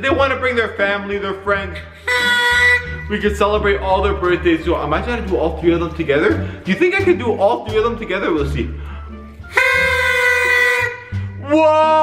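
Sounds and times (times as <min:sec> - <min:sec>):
party horns blowing: 0:01.8 - 0:04.0, 0:09.4 - 0:11.4.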